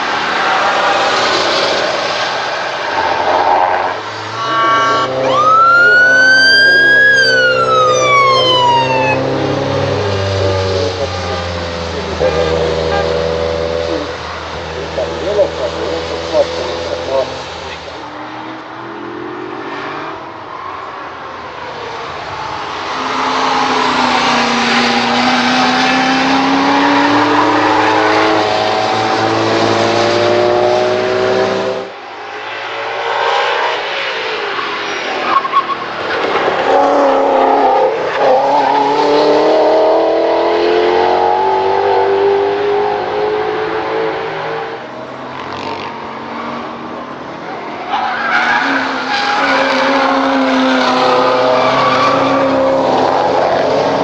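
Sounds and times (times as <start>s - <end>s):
car engines revving hard: 0.0s - 54.0s.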